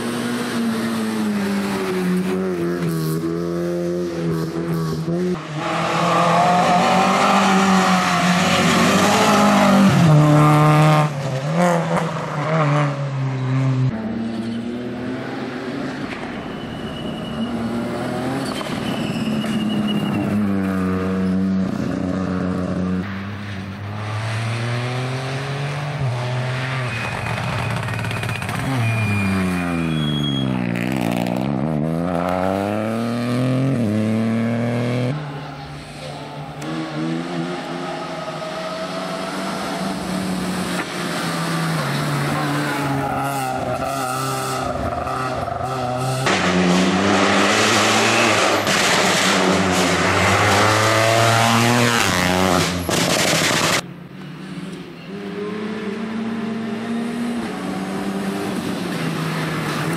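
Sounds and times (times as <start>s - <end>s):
rally car engines revving: 0.0s - 59.9s.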